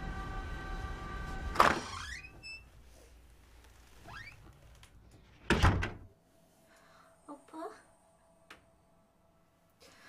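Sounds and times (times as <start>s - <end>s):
faint rising squeak: 1.8s - 2.8s.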